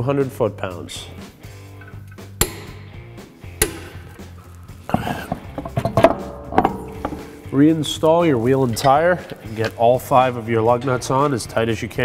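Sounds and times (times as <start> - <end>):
background music: 0.0 - 12.0
wheel knocking and clinking on hub: 4.9 - 9.6.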